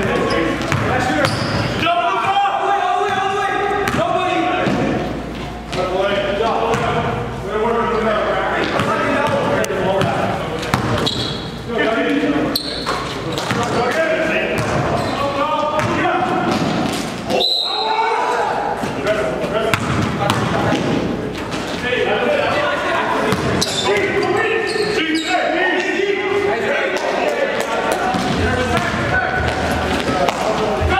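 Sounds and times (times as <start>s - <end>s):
players calling out: 0.0s - 30.9s
basketball bouncing on gym floor: 0.1s - 1.6s, 6.7s - 7.0s, 8.7s - 11.3s, 12.9s - 13.8s, 14.5s - 15.0s, 15.8s - 17.0s, 19.7s - 21.0s.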